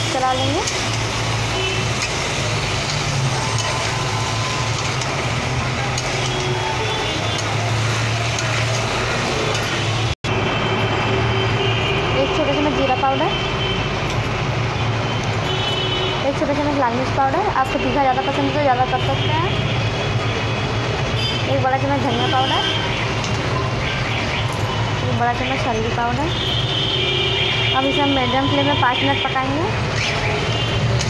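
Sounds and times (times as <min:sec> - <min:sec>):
vegetables sizzling in oil: 0:00.0 - 0:10.1
metal spatula stirring: 0:00.4 - 0:09.8.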